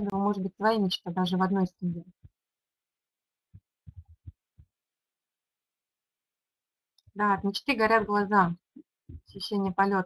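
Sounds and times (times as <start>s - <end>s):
faint muffled low thumps: 3.8s - 4.7s.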